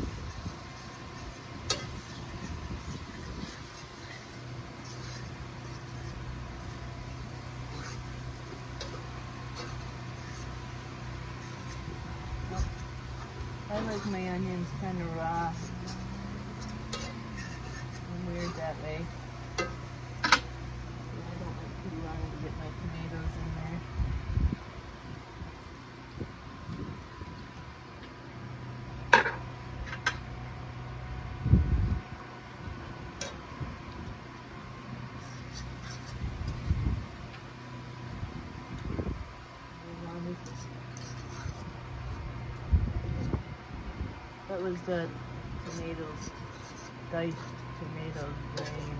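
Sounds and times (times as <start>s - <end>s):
utensil scraping frying pan: 0.0s - 23.5s, 35.0s - 36.9s, 40.3s - 42.3s, 45.6s - 48.9s
low hum: 0.0s - 48.9s.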